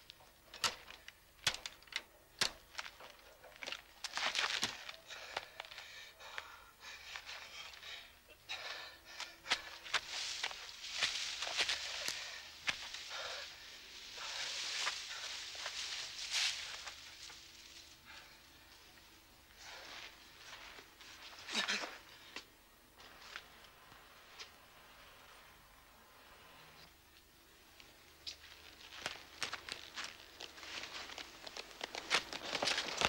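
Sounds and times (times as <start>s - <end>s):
rustling of leaves and branches: 0.0s - 33.0s
twigs snapping: 0.1s - 5.0s, 27.8s - 33.0s
heavy pained breathing: 4.6s - 10.1s, 11.6s - 15.8s
footsteps: 8.6s - 18.3s, 28.3s - 33.0s.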